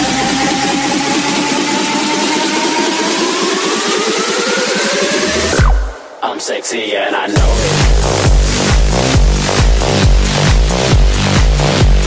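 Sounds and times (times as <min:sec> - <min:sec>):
rising synth sweep: 0:00.0 - 0:06.2
fast repeated drum hits: 0:07.4 - 0:12.0.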